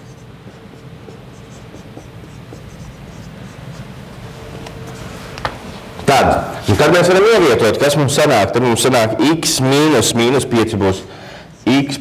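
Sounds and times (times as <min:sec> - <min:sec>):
marker scratching on whiteboard: 0:00.0 - 0:05.8.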